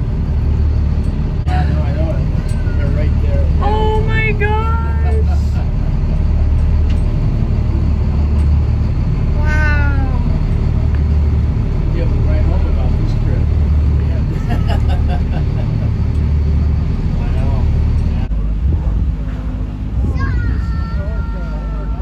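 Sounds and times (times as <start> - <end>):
boat engine humming: 0.0 - 22.0.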